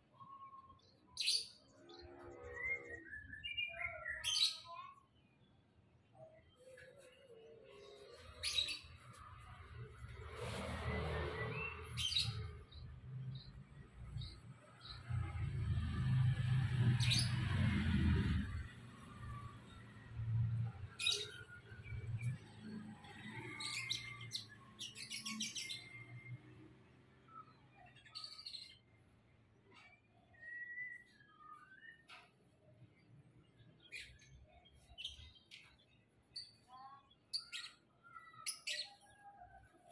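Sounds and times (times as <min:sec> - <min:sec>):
small birds chirping: 0:00.0 - 0:16.3, 0:17.0 - 0:39.9.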